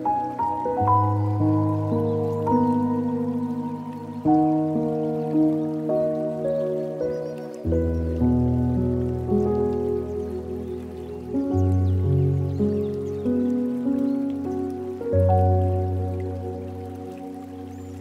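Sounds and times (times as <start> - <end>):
slow solo piano music: 0.0 - 18.0
water trickling: 0.0 - 18.0.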